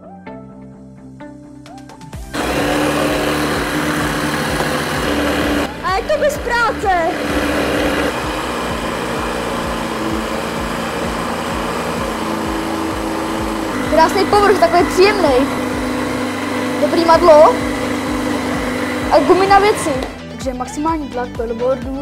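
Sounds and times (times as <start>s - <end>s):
electric inflation pump running: 2.3s - 20.2s.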